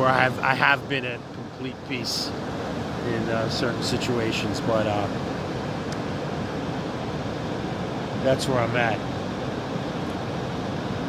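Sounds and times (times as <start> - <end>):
ocean surf: 0.0 - 11.0
wind: 0.0 - 11.0.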